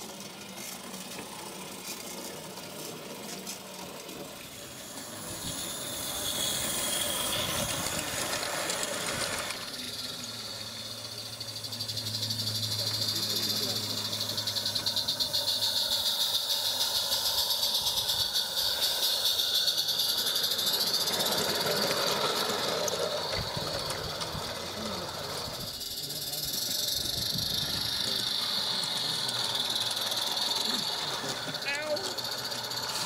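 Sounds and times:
steam hissing: 0.0 - 33.0
steam locomotive exhaust beat: 0.0 - 33.0
wagons passing: 0.0 - 33.0.

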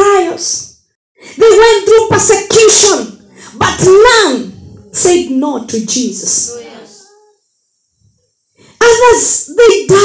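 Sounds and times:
woman preaching over amplification: 0.0 - 0.7, 1.4 - 7.0, 8.8 - 10.0.

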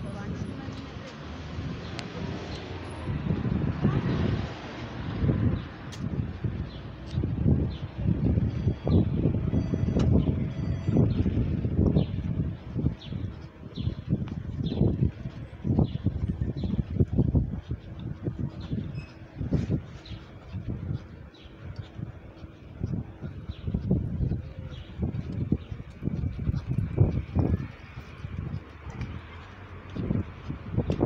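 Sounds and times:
footsteps on pavement: 0.0 - 31.0
low rumbling on microphone: 0.0 - 31.0.

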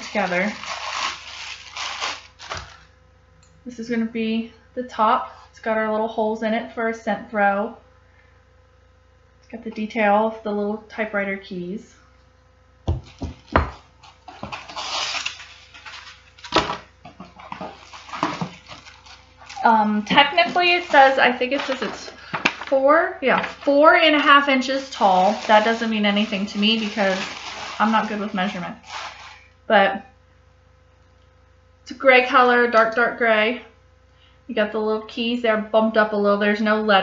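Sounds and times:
plastic wrapping crinkling: 0.0 - 2.9, 12.9 - 29.6.

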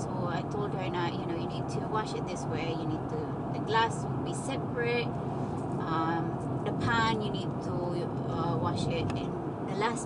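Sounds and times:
woman speaking: 0.0 - 5.1, 5.8 - 10.0
car road and engine rumble: 0.0 - 10.0.

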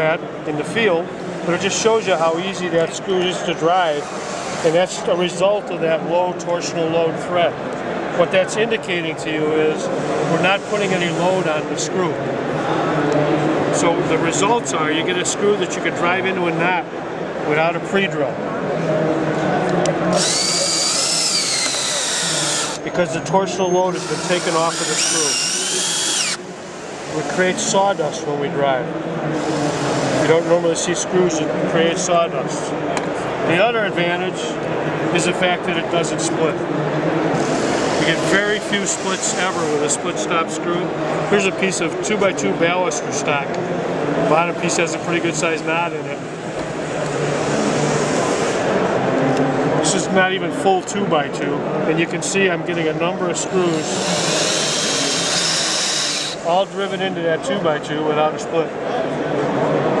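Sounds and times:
cordless drill motor whining: 20.1 - 23.0, 23.9 - 26.4, 53.7 - 56.8
continuous rushing hiss: 37.4 - 43.4.

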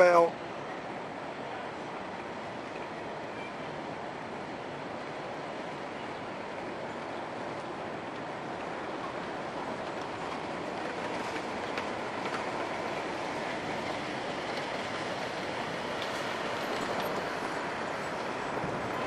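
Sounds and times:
traffic rush: 0.0 - 19.0.

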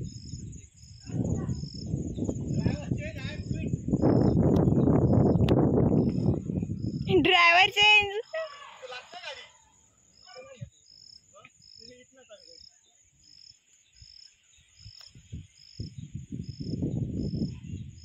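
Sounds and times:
high insect hiss: 0.0 - 18.0
insects chirping: 0.0 - 18.0.

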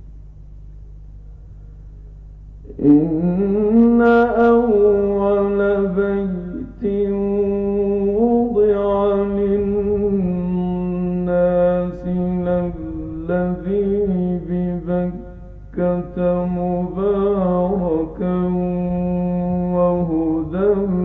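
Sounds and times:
man reciting melodically: 2.6 - 21.0.

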